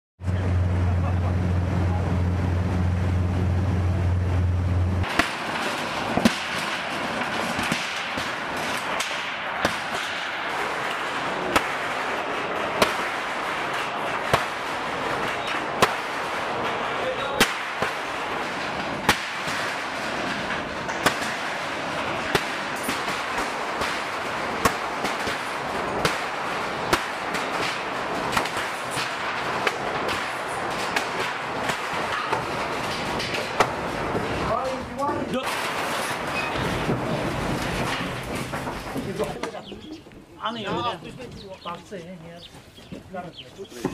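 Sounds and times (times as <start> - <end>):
motorboat engine hum: 0.2 - 5.0
metal and timber knocks: 5.0 - 39.8
clattering din: 5.0 - 42.0.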